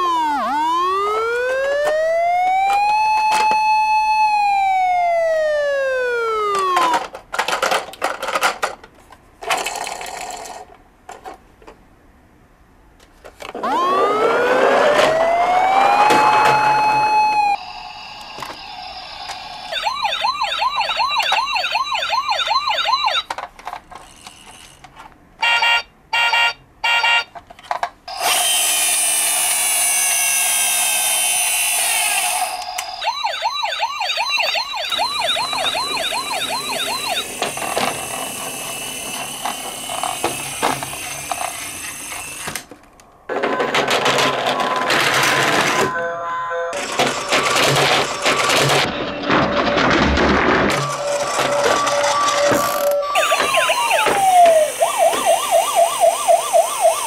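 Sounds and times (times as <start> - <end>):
hissing with falling tones: 0.0 - 6.8, 13.6 - 21.1, 50.9 - 57.0
warbling yelp siren: 0.0 - 7.0, 13.6 - 23.3, 32.5 - 40.6, 50.9 - 57.0
toy siren: 0.0 - 7.1, 13.6 - 23.4, 25.4 - 27.3, 30.4 - 42.5, 50.7 - 57.0.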